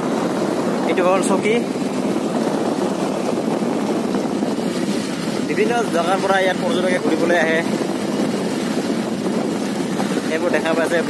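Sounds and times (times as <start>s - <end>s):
gravel road noise: 0.0s - 11.0s
vehicle engine running: 0.0s - 11.0s.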